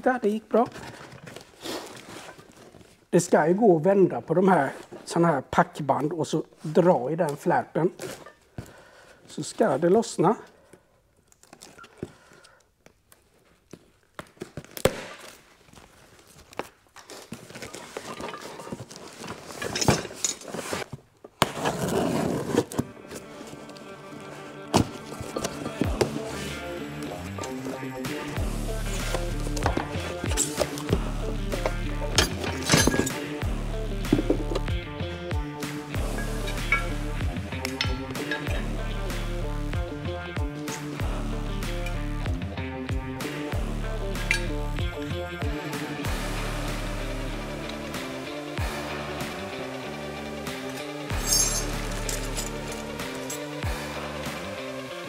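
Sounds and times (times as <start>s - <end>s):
steel parts clinking: 19.5s - 20.5s, 32.2s - 33.2s, 36.2s - 37.0s, 37.6s - 38.6s, 51.1s - 53.5s
background music: 21.5s - 55.0s
repeating bass beat: 28.1s - 32.6s, 33.4s - 49.5s.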